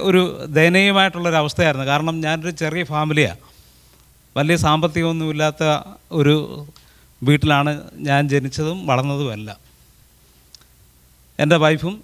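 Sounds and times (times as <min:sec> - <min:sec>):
man speaking into a microphone: 0:00.0 - 0:03.5, 0:04.4 - 0:09.7, 0:11.4 - 0:12.0
faint click: 0:10.5 - 0:10.8.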